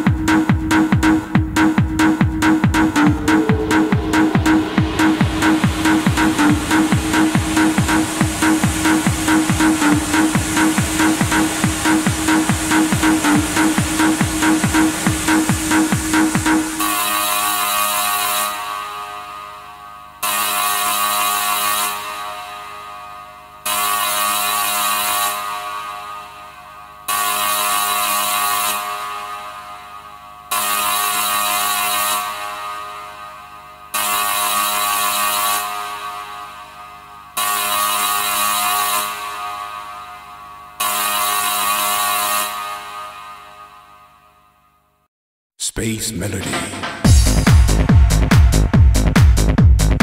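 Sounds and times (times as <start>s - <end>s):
electronic dance beat: 0.0s - 16.8s, 45.8s - 50.0s
sustained synth chord: 1.6s - 14.2s.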